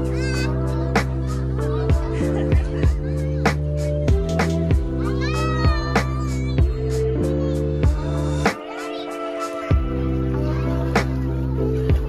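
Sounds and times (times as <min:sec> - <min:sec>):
music with steady beat: 0:00.0 - 0:12.0.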